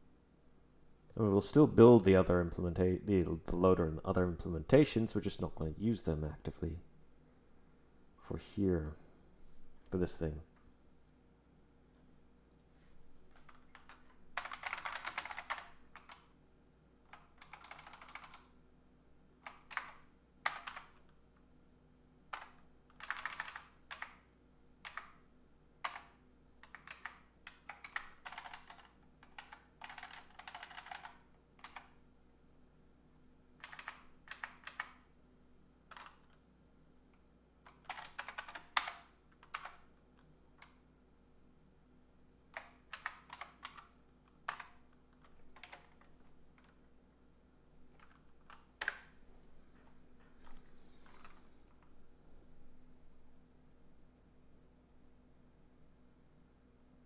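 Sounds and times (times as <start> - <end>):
typing on computer keyboard: 13.3 - 16.3, 17.1 - 18.5, 19.4 - 21.2, 22.3 - 25.2, 25.8 - 32.0, 33.6 - 35.1, 35.9 - 36.4, 37.6 - 40.8, 42.5 - 46.8, 47.9 - 49.2.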